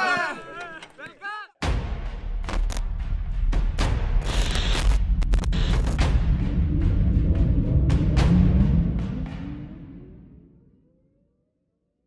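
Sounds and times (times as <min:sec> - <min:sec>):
deep boom with low rumble: 0:05.0 - 0:10.6.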